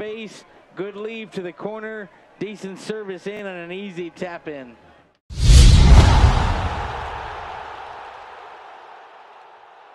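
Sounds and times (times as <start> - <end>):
booming whoosh tail: 5.3 - 7.6.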